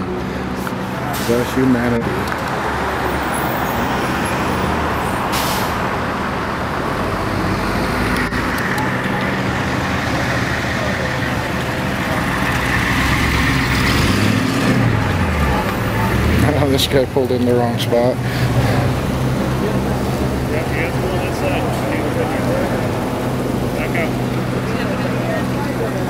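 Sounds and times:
vehicle engines running: 0.0s - 26.0s.

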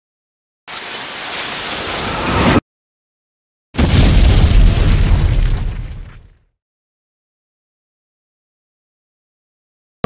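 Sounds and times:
explosion boom with deep rumble: 3.8s - 6.5s.

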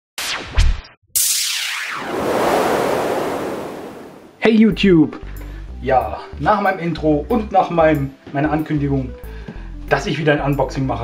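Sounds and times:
rushing noise: 1.9s - 4.4s.

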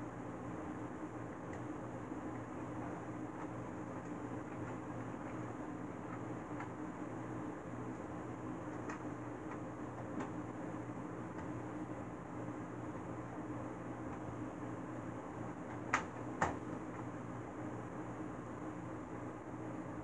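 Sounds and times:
low hum and hiss: 0.0s - 20.0s.

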